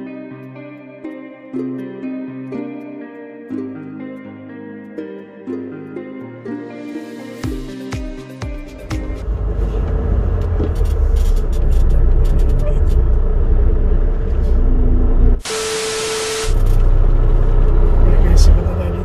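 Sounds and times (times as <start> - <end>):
heavy truck engine rumbling: 8.7 - 19.0
sudden air hiss: 15.4 - 16.9.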